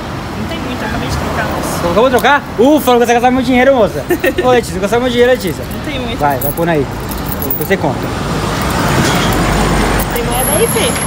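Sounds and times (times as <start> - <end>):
road vehicle passing: 0.0 - 11.0.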